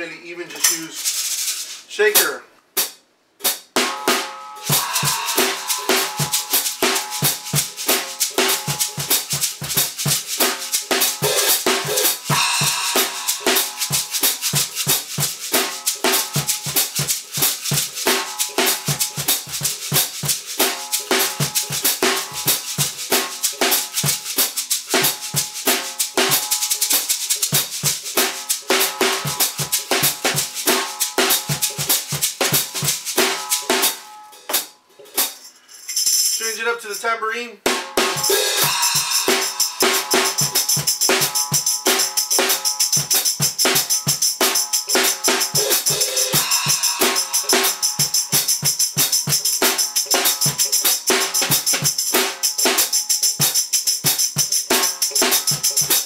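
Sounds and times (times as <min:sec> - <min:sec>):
snare drum strokes: 0:00.0 - 0:35.4, 0:37.7 - 0:56.0
shaker: 0:00.5 - 0:01.9, 0:04.6 - 0:36.7, 0:38.1 - 0:56.0.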